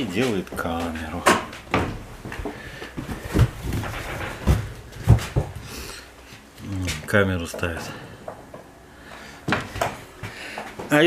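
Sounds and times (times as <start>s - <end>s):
dull thumps: 0.6s - 5.7s.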